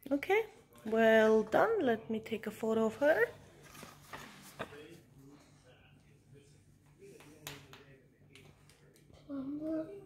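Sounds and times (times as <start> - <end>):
faint low hum: 0.2 - 10.0.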